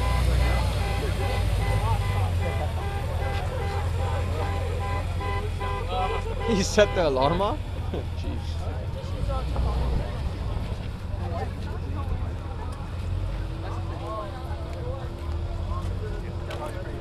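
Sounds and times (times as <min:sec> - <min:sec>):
car engine rumbling: 0:00.0 - 0:17.0
crowd chatter: 0:00.0 - 0:17.0.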